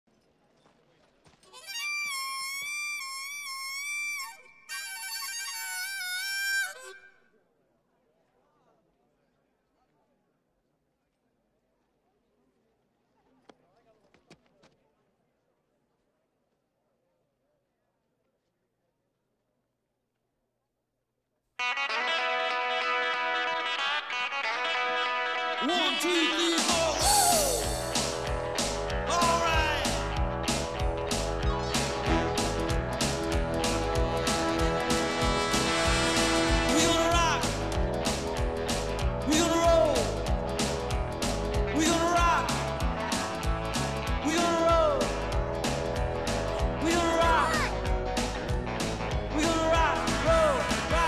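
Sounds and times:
harmonica chords: 1.7 - 7.1, 21.6 - 51.0.

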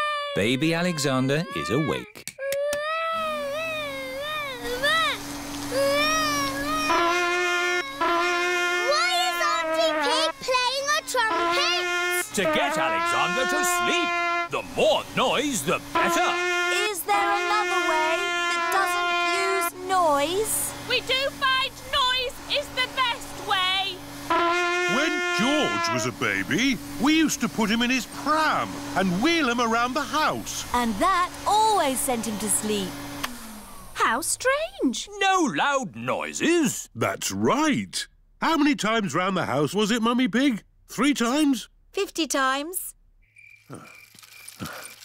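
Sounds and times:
trumpet long note: 6.6 - 14.7, 15.4 - 19.8, 24.2 - 27.6
vacuum cleaner hum: 11.2 - 34.4
crickets chirping: 43.2 - 45.0.

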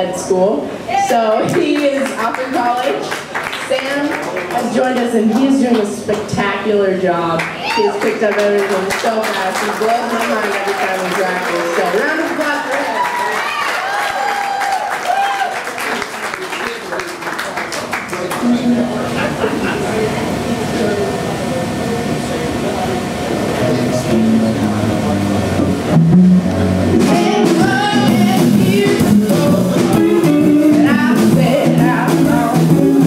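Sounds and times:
crowd noise and talk: 0.0 - 33.0
electric guitar: 18.3 - 33.0
bass guitar: 18.4 - 33.0
drums: 23.1 - 33.0
woman singing: 27.0 - 33.0.

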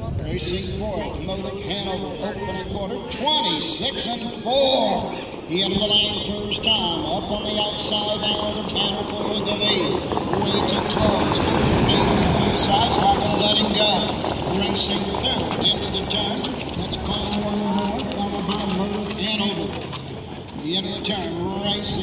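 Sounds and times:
indistinct voices: 0.0 - 22.0
horse hoofbeats on dirt: 5.6 - 22.0
sulky wheels rolling: 6.0 - 22.0.

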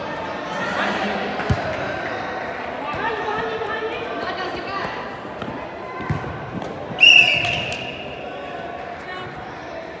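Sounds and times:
players' voices: 0.0 - 10.0
soccer ball knocks: 5.4 - 6.8
referee's whistle blast: 7.0 - 8.2.

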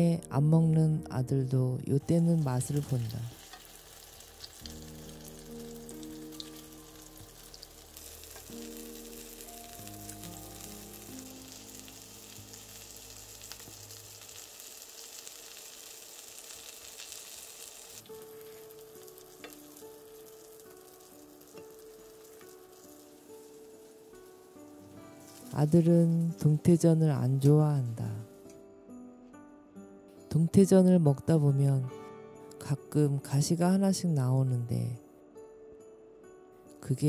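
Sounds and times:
soft background music: 0.0 - 37.0
fish sizzling in a pan: 2.3 - 26.6.

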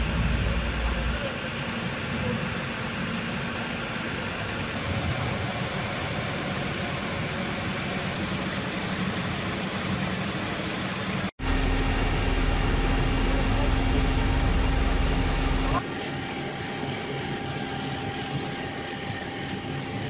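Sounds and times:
fire engine running: 0.0 - 15.8.

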